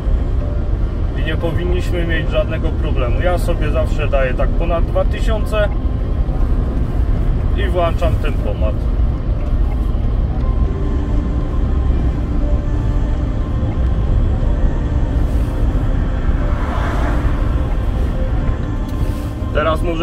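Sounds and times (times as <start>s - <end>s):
diesel engine drone in car: 0.0s - 20.0s
music playing: 0.0s - 20.0s
road noise: 0.0s - 20.0s.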